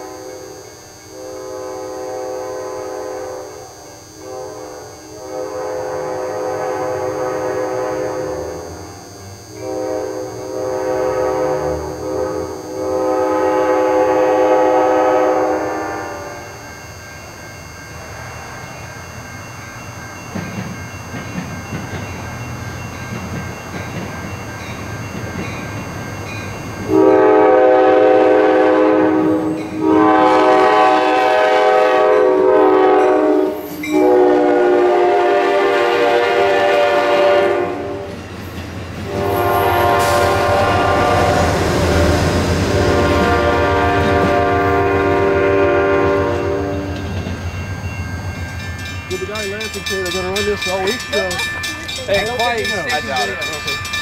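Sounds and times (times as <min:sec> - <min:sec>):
train horn blasts: 0:00.0 - 0:16.8, 0:26.8 - 0:38.2, 0:39.0 - 0:47.2
train rumble: 0:18.0 - 0:54.0
wheels clattering on rails: 0:20.2 - 0:26.9, 0:46.9 - 0:54.0.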